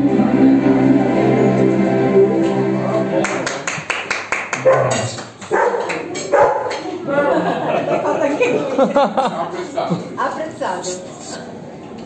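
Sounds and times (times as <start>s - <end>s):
people's voices in a room: 2.4s - 12.0s.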